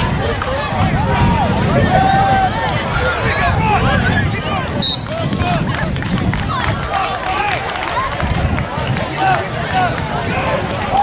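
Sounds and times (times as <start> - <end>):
voices calling and chattering: 0.0 - 11.0.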